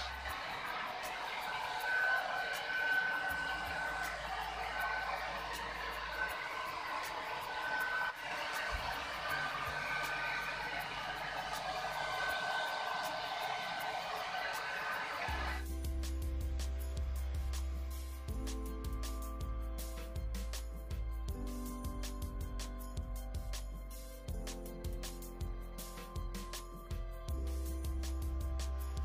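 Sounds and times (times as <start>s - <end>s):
hair dryer blowing: 0.0s - 15.6s
faint high whistle: 0.0s - 15.7s.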